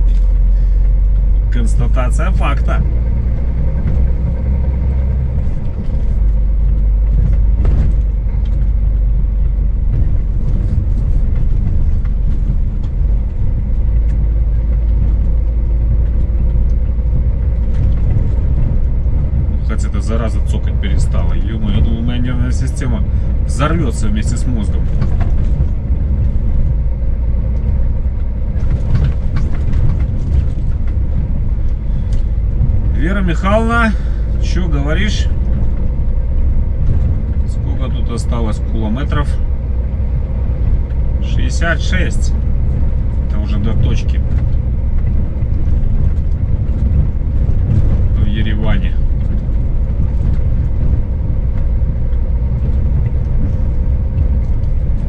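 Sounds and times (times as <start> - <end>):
truck engine and tyres rumbling: 0.0 - 55.0.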